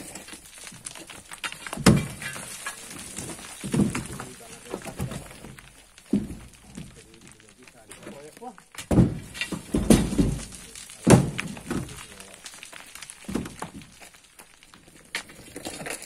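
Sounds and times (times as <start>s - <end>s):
pry bar thudding into earth and stones: 0.0s - 7.3s, 8.0s - 14.2s.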